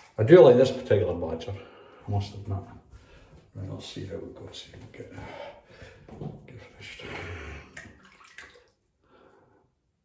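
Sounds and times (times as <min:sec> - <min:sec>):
water running and splashing in basin: 0:07.6 - 0:08.8.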